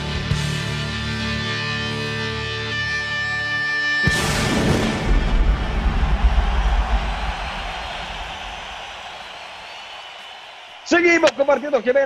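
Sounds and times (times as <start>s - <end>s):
theme music: 0.0s - 10.6s.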